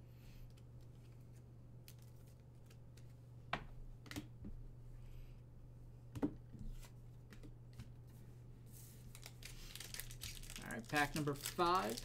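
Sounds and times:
plastic wrapper crinkling: 9.1s - 12.0s.

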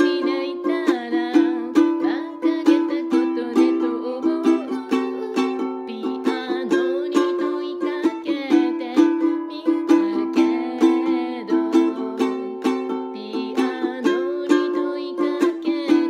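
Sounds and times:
ukulele strummed: 0.0s - 16.0s.

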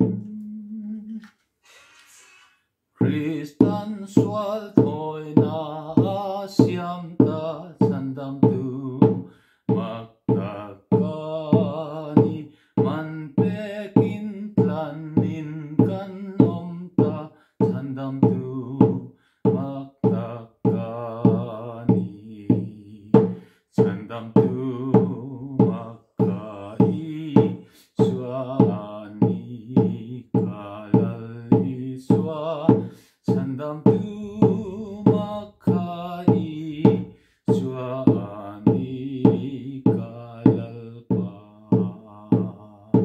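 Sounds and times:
hand drum beaten with stick: 0.0s - 0.4s, 3.0s - 43.0s
man singing a hymn: 0.0s - 2.1s, 3.0s - 43.0s.

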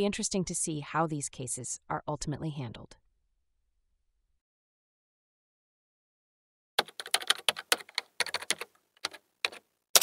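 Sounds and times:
computer keyboard typing: 6.8s - 10.0s.

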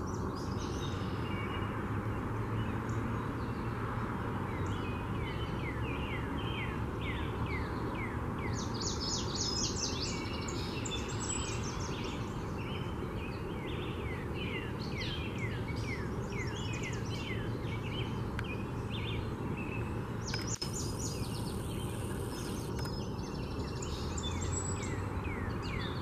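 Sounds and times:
bird chirping: 4.5s - 26.0s
high-pitched birdsong: 4.5s - 26.0s.

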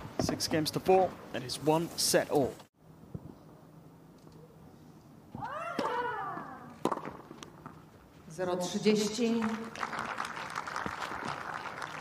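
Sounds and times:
racket hitting ball: 5.7s - 6.0s, 6.8s - 7.4s.

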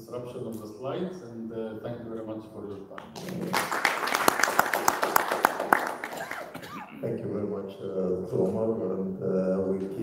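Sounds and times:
audience applauding: 3.2s - 6.6s.

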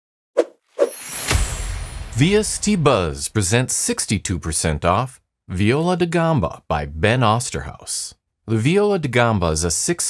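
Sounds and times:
soft hit: 0.9s - 3.7s
whoosh with low rumble: 1.1s - 3.7s.

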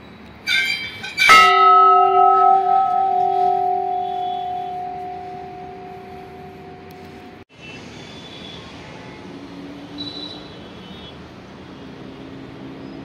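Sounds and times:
large temple bell ringing: 1.2s - 7.4s.

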